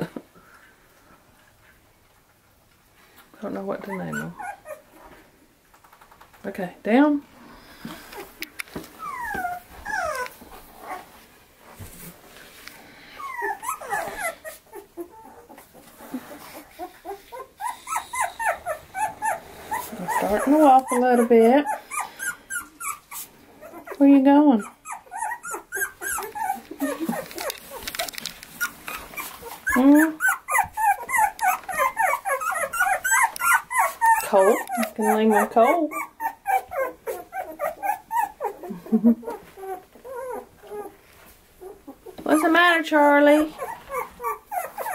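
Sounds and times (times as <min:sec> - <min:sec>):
puppies whining: 0:03.8 - 0:05.0, 0:08.0 - 0:11.1, 0:13.0 - 0:44.9.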